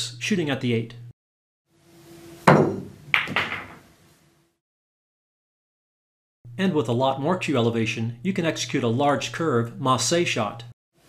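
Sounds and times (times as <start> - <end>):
cue striking ball click: 2.5 - 3.8.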